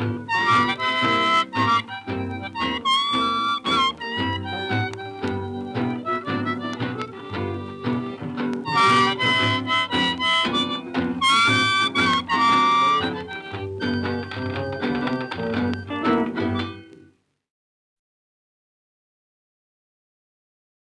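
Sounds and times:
rhythm accompaniment: 0.0s - 16.9s
blues harmonica: 0.0s - 17.0s.

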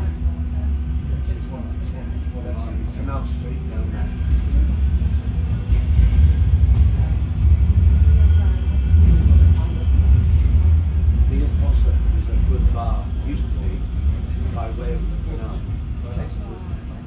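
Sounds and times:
faint voices talking: 0.0s - 17.0s
tram rumbling: 0.0s - 17.0s.

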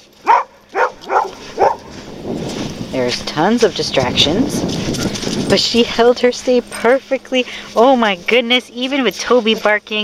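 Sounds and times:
dog barking: 0.2s - 1.9s.

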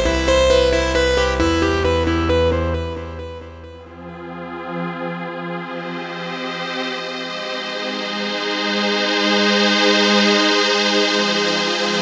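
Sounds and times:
sustained synthesizer chord: 0.0s - 7.7s.

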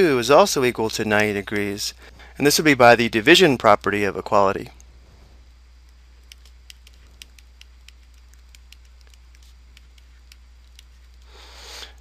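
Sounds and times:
low electrical hum: 0.0s - 12.0s
stylus tapping on tablet screen: 5.8s - 11.3s.

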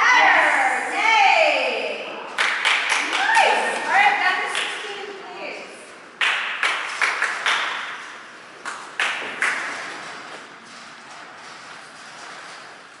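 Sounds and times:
hand claps echoing: 2.4s - 5.2s, 6.2s - 10.2s.

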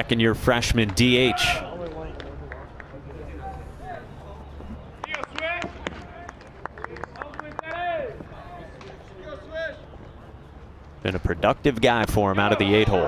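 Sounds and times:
players shouting and chatting: 0.0s - 13.0s.

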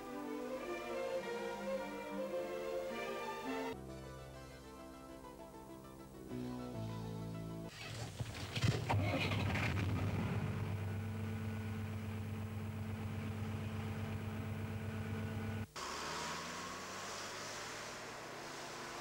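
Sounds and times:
diesel engine cranking and idling: 8.9s - 19.0s.

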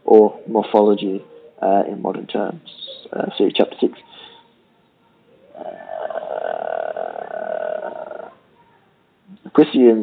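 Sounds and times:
man saying uhhh: 5.6s - 8.3s.

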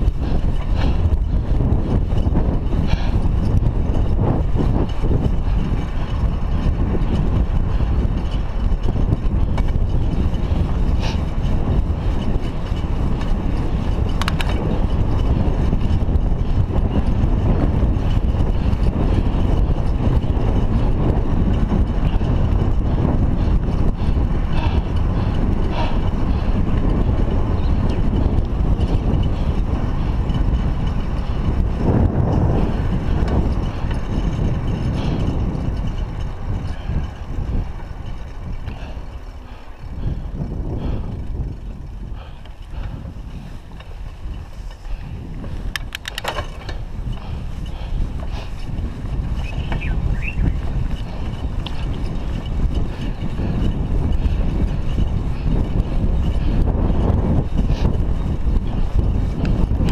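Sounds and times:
bicycle tyre road noise: 0.0s - 59.9s
wind rumbling on microphone: 0.0s - 59.9s.

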